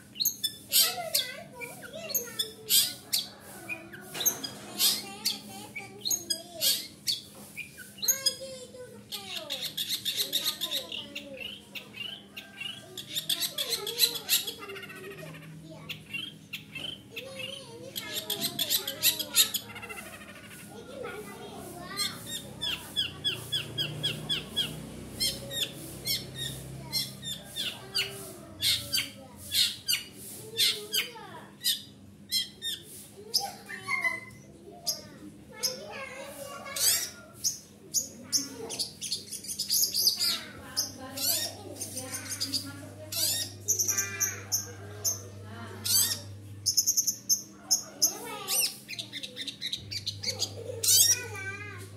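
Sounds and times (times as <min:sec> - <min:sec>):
bird scratchy chattering: 0:00.0 - 0:51.9.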